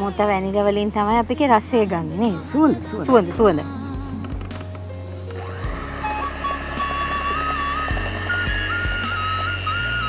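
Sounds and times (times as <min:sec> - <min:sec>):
background music melody: 0:00.0 - 0:10.0.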